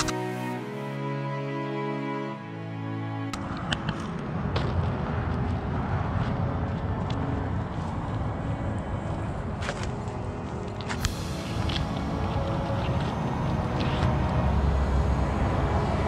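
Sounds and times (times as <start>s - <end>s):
wind rumbling on microphone: 3.4s - 16.0s.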